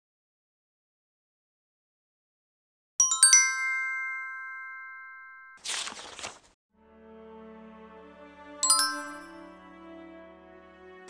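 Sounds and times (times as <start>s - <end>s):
bell-like chime: 3.0s - 5.6s, 8.6s - 9.5s.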